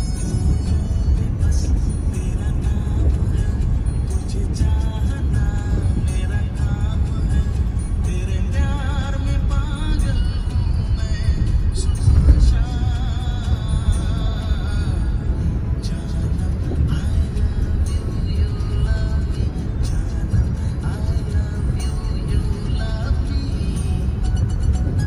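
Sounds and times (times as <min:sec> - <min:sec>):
car rumbling on wet highway: 0:00.0 - 0:25.0
music: 0:00.0 - 0:25.0.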